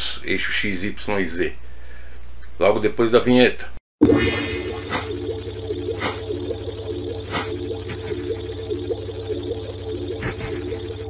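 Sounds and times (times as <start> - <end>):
pulsing electronic blips: 4.0 - 11.0
sustained mid-pitched tone: 4.0 - 11.0
low electronic drone: 4.1 - 11.0.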